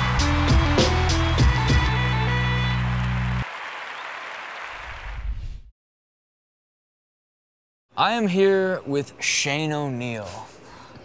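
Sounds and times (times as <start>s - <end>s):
noisy wash like applause: 0.0s - 5.4s.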